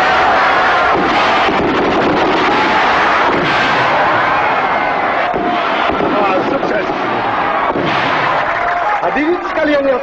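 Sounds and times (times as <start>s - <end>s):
fireworks bursting and crackling: 0.0s - 10.0s.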